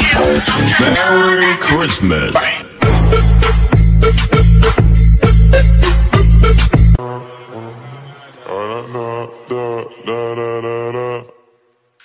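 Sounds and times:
person chanting slow melody: 0:07.0 - 0:11.5.

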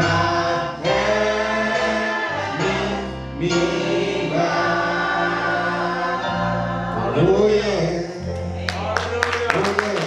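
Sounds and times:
man singing gospel: 0:00.0 - 0:10.0
hand claps: 0:08.7 - 0:10.0.

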